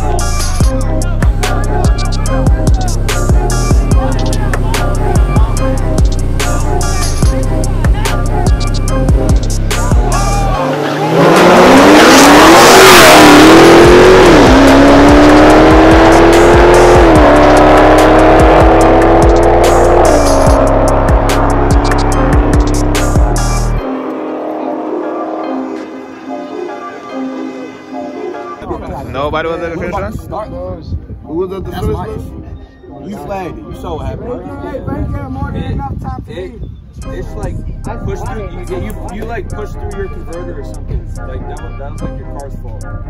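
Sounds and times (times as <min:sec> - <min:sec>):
background music with beat: 0:00.0 - 0:29.0, 0:37.0 - 0:43.0
car engine accelerating: 0:02.4 - 0:26.5
cars launching: 0:09.7 - 0:28.0.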